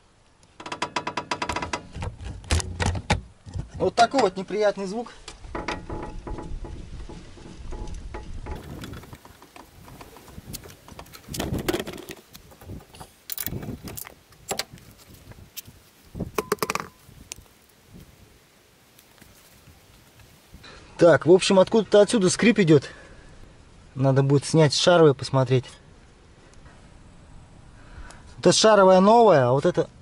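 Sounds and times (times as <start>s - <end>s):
metallic clicks and clanks: 0.5s - 3.0s, 5.3s - 14.7s
scissor jack grinding rumble: 5.7s - 14.6s.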